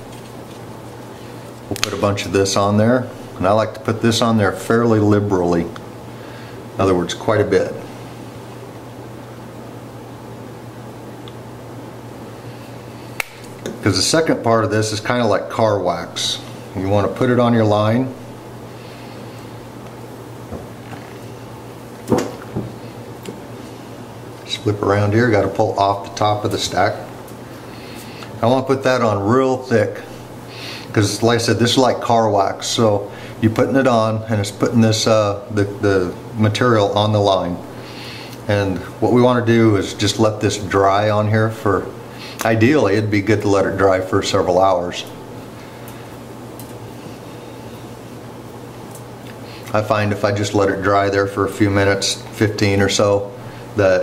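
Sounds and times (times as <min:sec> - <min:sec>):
steady low hum: 0:00.0 - 0:54.0
sharp click: 0:13.2 - 0:13.8.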